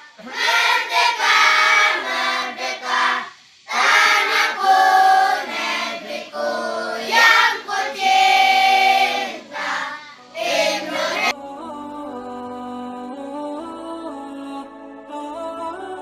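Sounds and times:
group singing sustained notes: 0.0 - 16.0.

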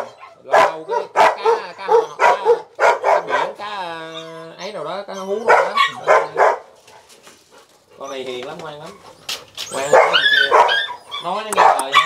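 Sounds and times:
dog barking: 0.0 - 3.6, 5.4 - 7.0, 9.8 - 12.0.

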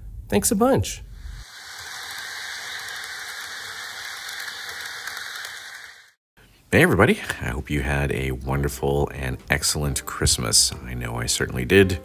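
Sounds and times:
model steam train hissing: 1.2 - 6.2.

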